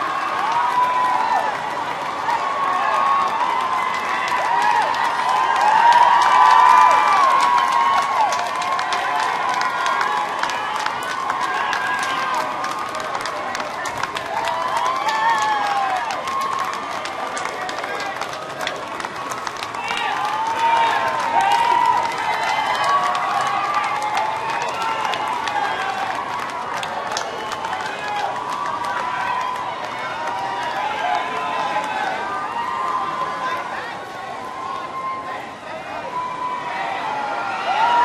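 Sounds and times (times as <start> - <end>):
crowd cheering and shouting: 0.0 - 38.0.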